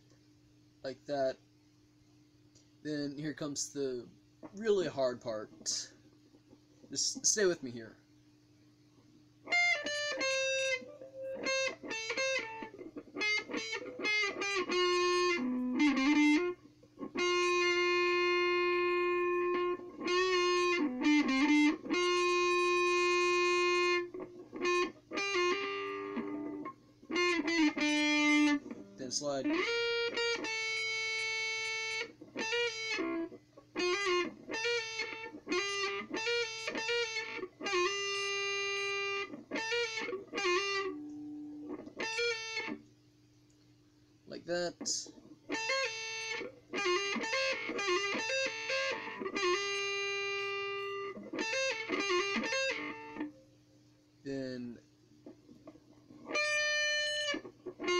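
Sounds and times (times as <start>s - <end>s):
electric guitar solo: 9.4s - 42.8s, 45.5s - 53.4s, 54.3s - 57.9s.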